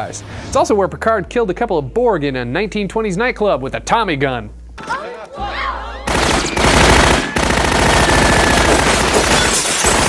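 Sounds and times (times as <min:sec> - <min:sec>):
submachine gun automatic fire: 0:06.1 - 0:10.0.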